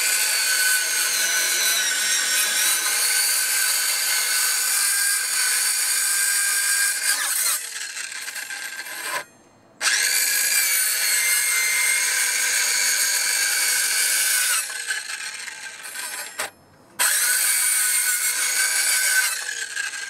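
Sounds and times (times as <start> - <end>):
circular saw cutting wood: 0.0 - 20.0.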